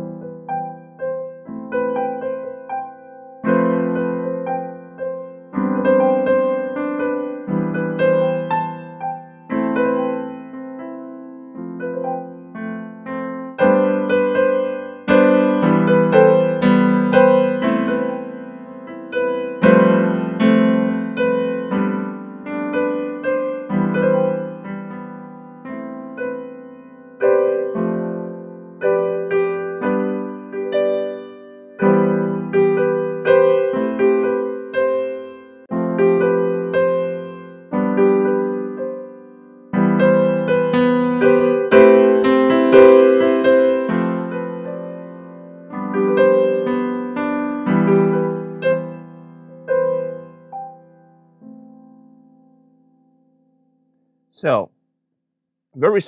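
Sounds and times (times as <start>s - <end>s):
piano chords on digital keyboard: 0.0s - 53.2s, 54.3s - 54.7s, 55.8s - 56.0s.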